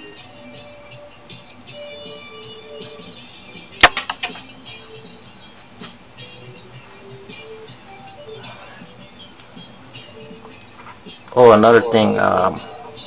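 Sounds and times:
music: 0.0 - 13.0
toy launcher plastic snap: 3.8 - 4.4.

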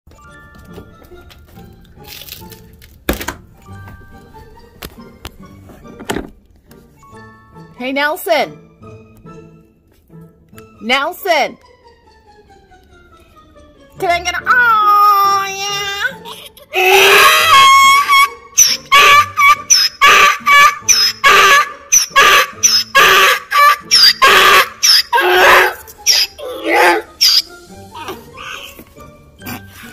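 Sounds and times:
background music melody: 0.1 - 29.9
donkey braying: 16.8 - 28.8.

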